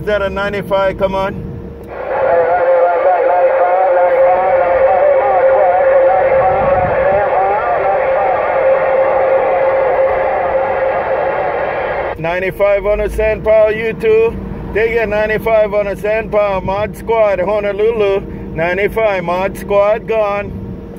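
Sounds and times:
radio whistle-like tone: 1.8 - 12.2
warbling radio audio: 1.9 - 13.0.

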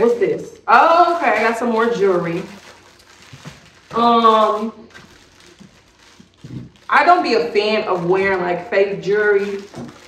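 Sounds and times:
woman speaking: 0.0 - 2.6, 3.9 - 4.8, 6.9 - 9.9
plastic packet rustling: 0.0 - 10.0.

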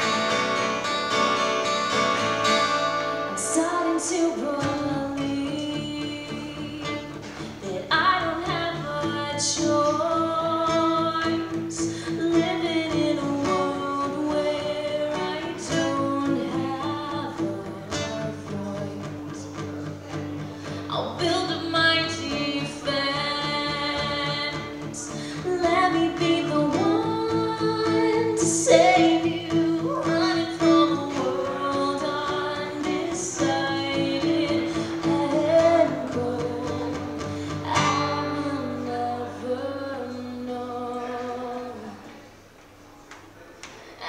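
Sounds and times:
strummed acoustic guitars: 0.0 - 42.3
woman singing lead: 2.5 - 42.2
female harmony vocal: 3.4 - 19.5, 20.8 - 42.1.

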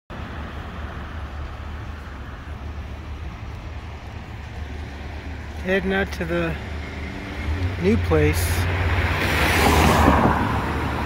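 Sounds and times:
cars rumbling on city road: 0.1 - 11.0.

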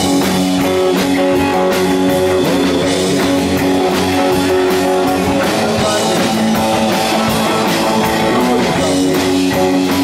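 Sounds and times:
bass guitar: 0.0 - 10.0
drum kit beat: 0.0 - 10.0
electric guitar: 0.0 - 10.0.

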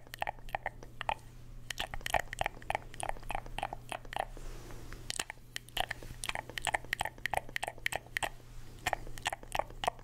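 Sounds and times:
wet mouth sounds through tube: 0.0 - 10.0.

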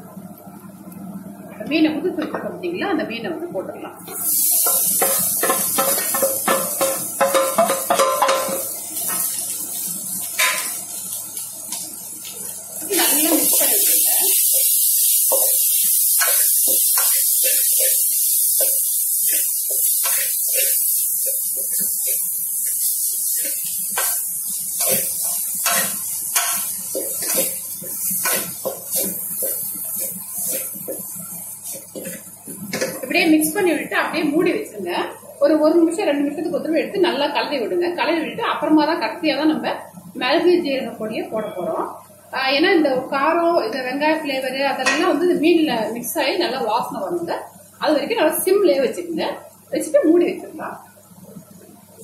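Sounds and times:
meat and onions sizzling in oil: 4.0 - 34.6
wooden spatula scraping pot: 24.8 - 32.2.

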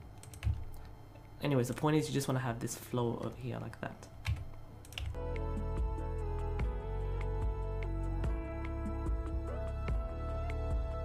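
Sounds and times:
keyboard and mouse clicks: 0.1 - 1.8, 4.2 - 5.2
background music with held notes: 5.0 - 11.0.

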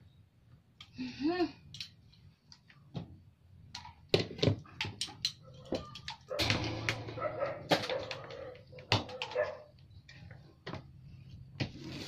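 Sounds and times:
sharp clicks and knocks: 3.7 - 10.8.

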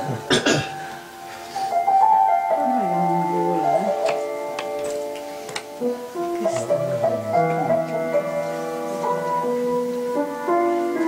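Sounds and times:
slow piano piece: 0.0 - 11.0.

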